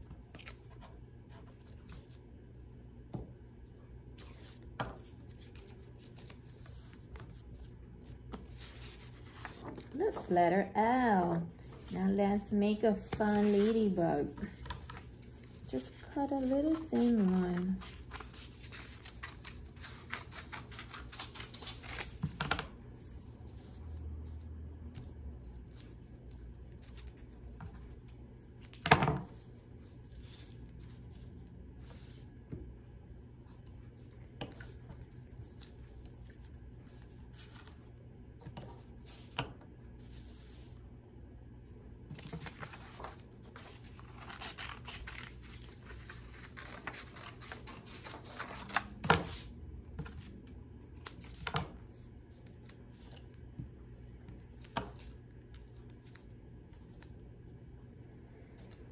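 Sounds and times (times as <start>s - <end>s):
paper rustling: 4.2s - 10.4s, 12.8s - 24.4s, 42.2s - 50.3s.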